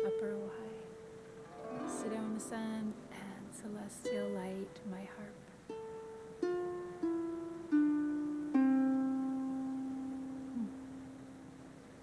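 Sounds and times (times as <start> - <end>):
harp strings ringing: 0.0 - 5.9.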